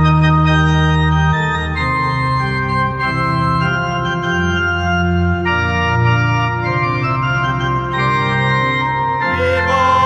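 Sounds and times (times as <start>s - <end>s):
organ playing held chords: 0.0s - 10.0s
person singing a held note: 9.4s - 10.0s.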